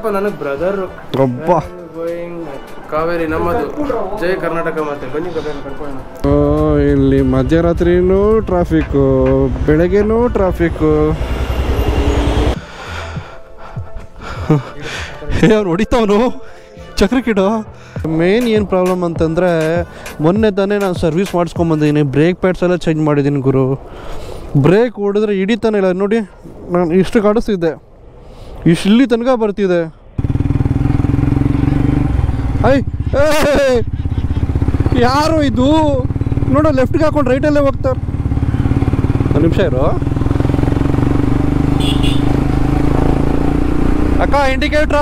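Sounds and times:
road traffic: 0.0s - 45.0s
motorcycle engine rumble: 6.2s - 13.3s, 30.2s - 45.0s.

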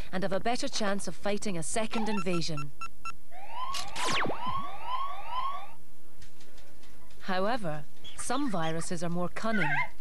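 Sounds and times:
rising siren-like whoop: 3.4s - 5.8s.

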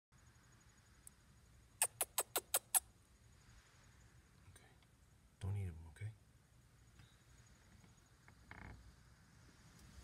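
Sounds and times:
chipmunk chirps: 1.8s - 2.9s.

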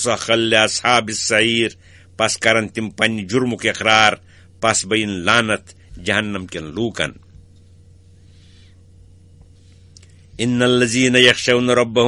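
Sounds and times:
recording hiss: 0.0s - 8.8s
low electrical hum: 0.0s - 12.0s
faint breathy sound: 8.0s - 8.9s.

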